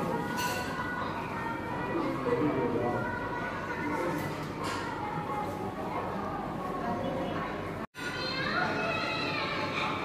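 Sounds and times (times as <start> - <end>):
background voices chattering: 0.0 - 10.0.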